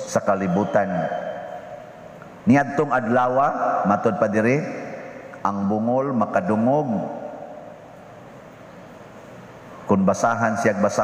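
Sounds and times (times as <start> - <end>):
man's voice echoing: 0.0 - 8.2, 9.7 - 11.0
room tone hum and hiss: 0.0 - 11.0.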